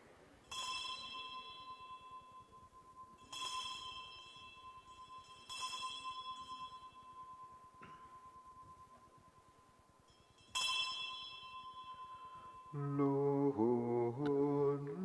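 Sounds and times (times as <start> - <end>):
altar bell ringing: 0.4 - 15.0.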